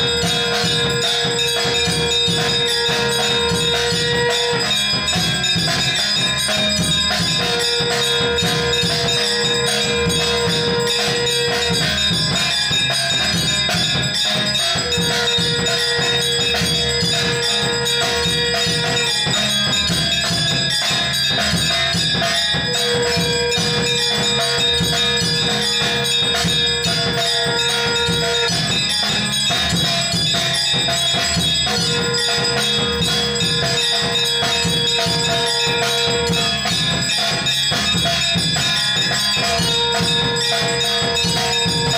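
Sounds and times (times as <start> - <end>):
bells ringing: 0.0 - 41.9.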